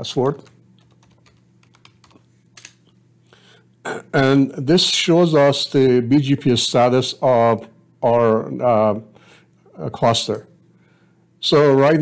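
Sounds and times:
low steady hum: 0:00.0 - 0:12.0
computer keyboard keystrokes: 0:00.2 - 0:02.8.

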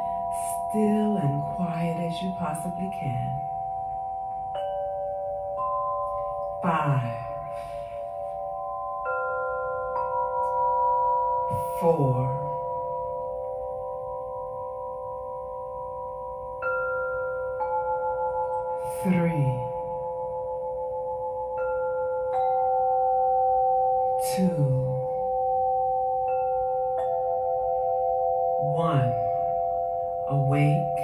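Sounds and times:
crystal singing bowls ringing: 0:00.0 - 0:31.0
higher bowl notes struck: 0:00.0 - 0:31.0.

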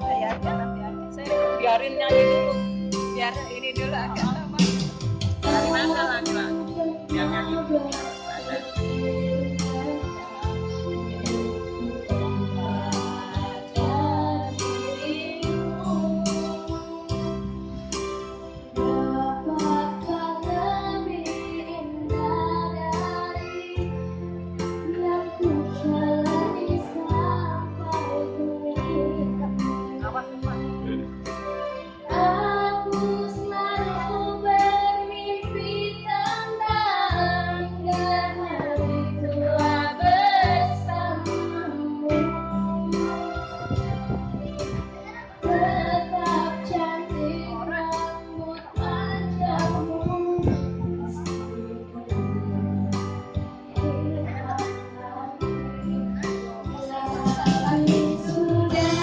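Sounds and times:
guitar accompaniment: 0:00.0 - 0:59.0
girl singing into microphone: 0:05.4 - 0:17.9, 0:18.5 - 0:31.2, 0:31.8 - 0:59.0.

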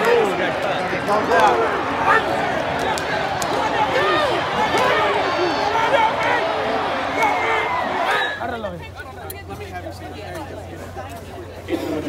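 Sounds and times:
chatter of a few voices: 0:00.0 - 0:12.0
crowd shouting and cheering: 0:00.0 - 0:12.0.

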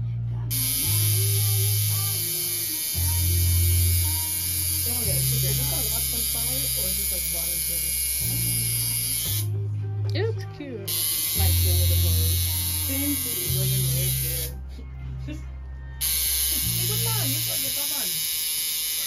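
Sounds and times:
music with deep bass line: 0:00.0 - 0:17.9
tattoo machine buzzing: 0:00.5 - 0:09.5, 0:10.9 - 0:14.6, 0:16.0 - 0:19.0.

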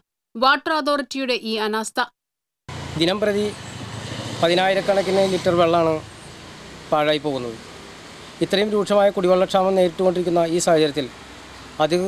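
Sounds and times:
motor vehicle rumble: 0:02.7 - 0:12.0
man speaking: 0:08.4 - 0:11.1, 0:11.8 - 0:12.0.

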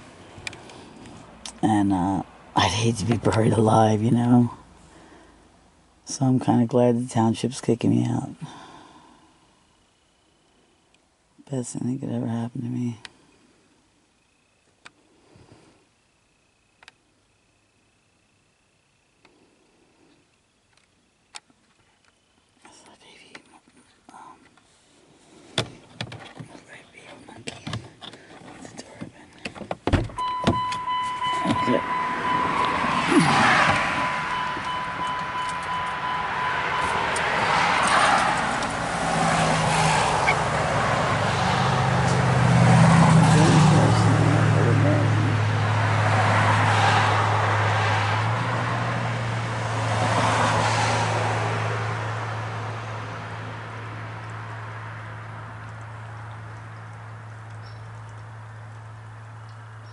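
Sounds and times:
car engine running: 0:25.4 - 0:59.9
thump: 0:29.6 - 0:30.7
high electronic beep: 0:30.2 - 0:37.2.

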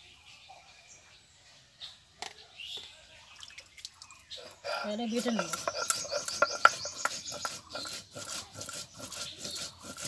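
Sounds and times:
water dripping and splashing: 0:03.3 - 0:04.4.

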